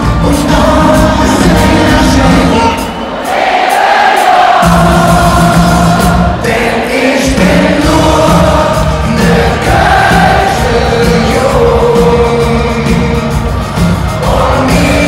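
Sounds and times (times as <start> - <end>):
crowd singing along: 0.0 - 15.0
live band playing: 0.0 - 15.0.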